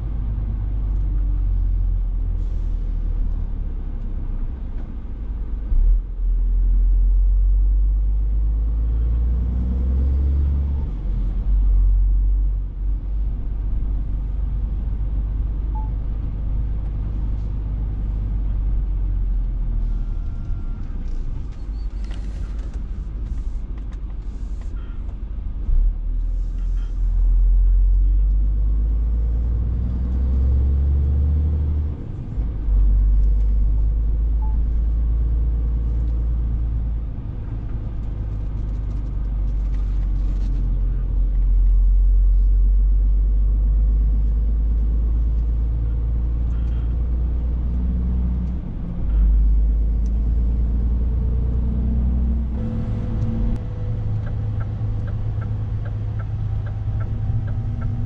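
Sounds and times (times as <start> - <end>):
truck diesel engine rumble: 0.0 - 58.0.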